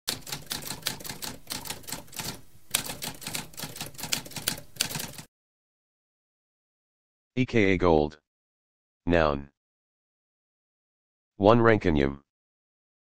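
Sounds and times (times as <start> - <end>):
typewriter keystrokes clattering: 0.1 - 5.3.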